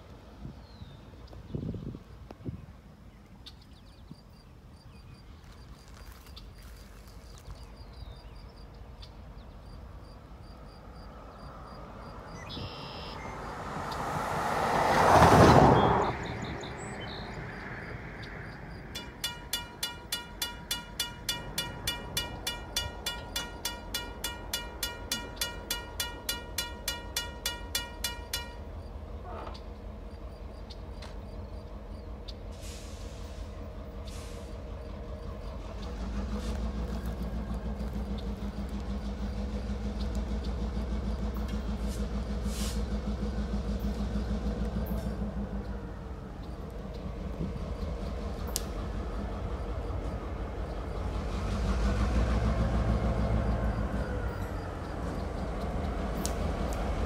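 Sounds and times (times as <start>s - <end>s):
diesel locomotive engine rumble: 0.0s - 57.0s
crossing bell ringing: 18.8s - 29.1s.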